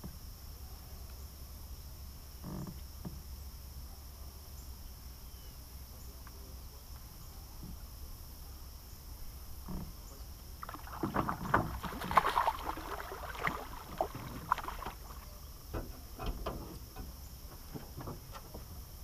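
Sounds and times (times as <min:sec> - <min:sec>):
fish splashing in water: 0:10.6 - 0:15.5.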